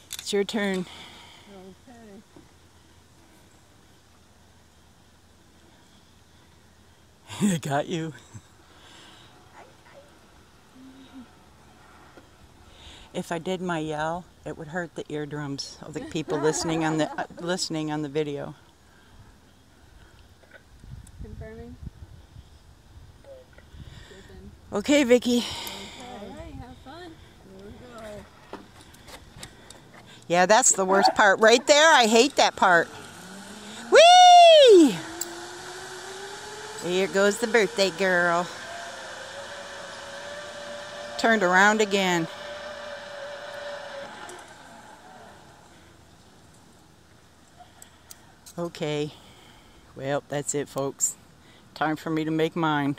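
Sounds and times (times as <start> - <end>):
background hiss: 0.0 - 15.6
low hummed voice: 9.5 - 11.4
zipline pulleys whirring: 15.6 - 19.4, 24.8 - 48.6.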